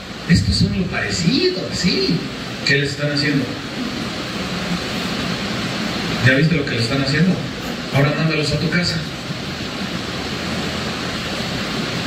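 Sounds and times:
room noise rush: 0.0s - 12.0s.

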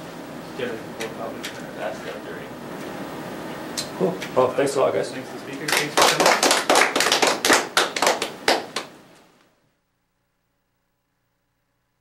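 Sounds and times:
audience applauding: 5.6s - 8.9s.

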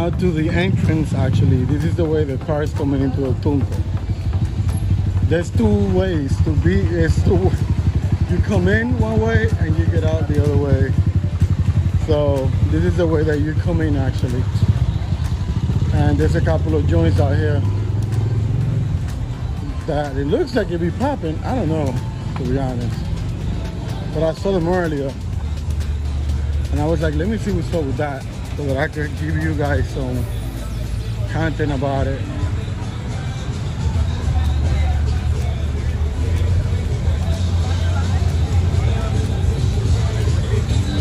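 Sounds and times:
car engine running: 0.0s - 41.0s
faint music: 0.0s - 41.0s.

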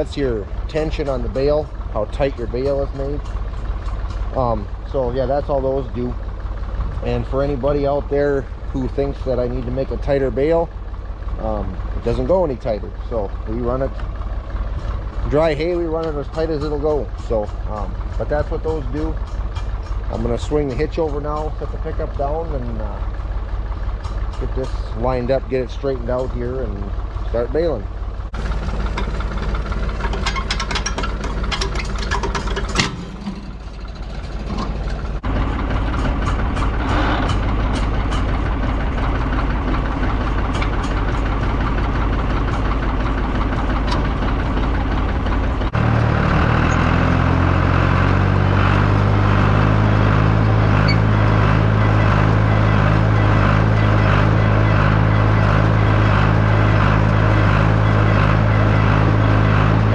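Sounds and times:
tractor engine running: 0.0s - 59.9s
metallic clicks and knocks: 2.2s - 4.4s, 13.9s - 21.8s, 28.7s - 45.7s.

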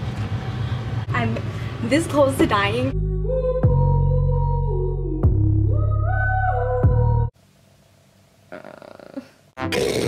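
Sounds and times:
girl murmuring: 8.5s - 9.4s.

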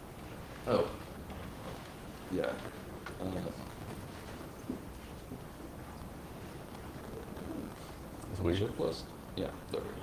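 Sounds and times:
faint low murmurs: 0.2s - 10.0s.

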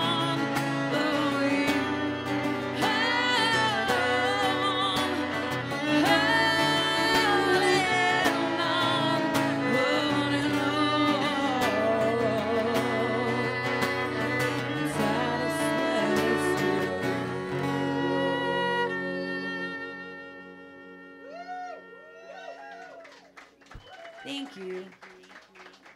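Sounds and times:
strummed acoustic guitar: 0.0s - 20.5s
bowed cello: 0.0s - 21.0s
woman singing: 0.0s - 21.2s.

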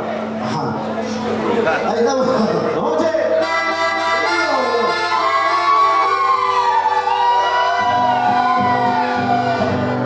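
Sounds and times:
accordion playing chords: 2.8s - 10.0s
acoustic guitars: 3.4s - 10.0s.

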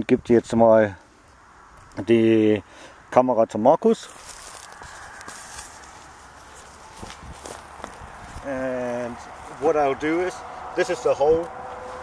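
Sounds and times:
soft footsteps on grass: 4.0s - 12.0s
camera handling rustle: 4.1s - 8.0s.

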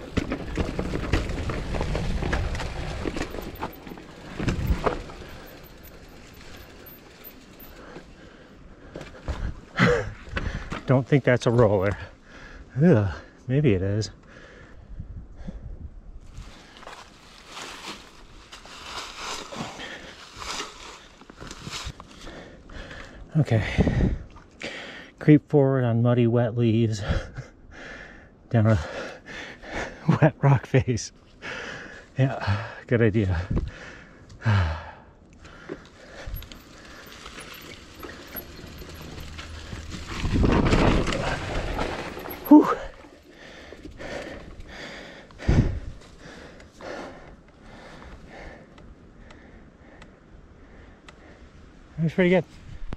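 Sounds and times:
bike tyres rushing over leaves: 0.0s - 8.4s, 16.3s - 22.5s, 35.8s - 44.4s
bike mechanical rattle: 0.0s - 12.0s, 35.4s - 46.8s
footsteps crunching dry leaves: 16.5s - 22.0s.

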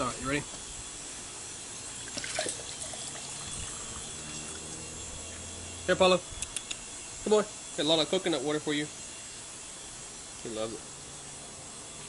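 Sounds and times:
liquid pouring into a glass: 2.0s - 4.8s.

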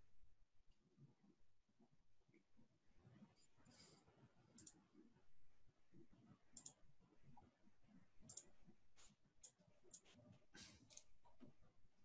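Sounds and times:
faint mouse clicks: 4.5s - 5.1s, 6.5s - 7.5s, 8.2s - 11.6s.

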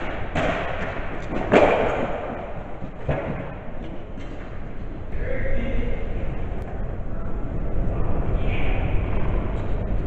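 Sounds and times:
thumps echoing in a hall: 0.0s - 10.0s.

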